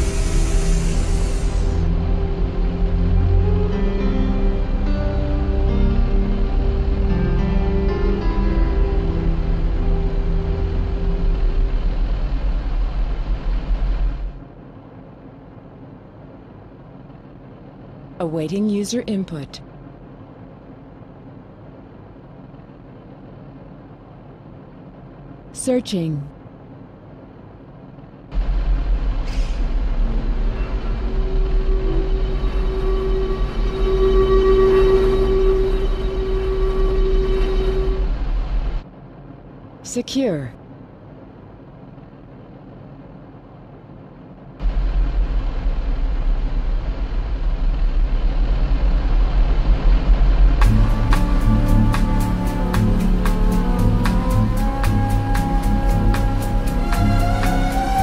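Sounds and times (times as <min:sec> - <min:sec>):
low machine rumble: 0:00.0 - 0:58.0
quiet hum: 0:00.0 - 0:58.0
held music notes: 0:30.0 - 0:38.2, 0:50.6 - 0:58.0.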